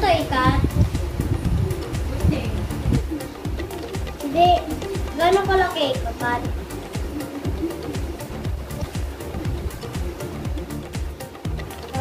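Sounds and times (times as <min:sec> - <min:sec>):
background music: 0:00.0 - 0:12.0
pigeon cooing: 0:01.1 - 0:05.1, 0:06.1 - 0:11.3.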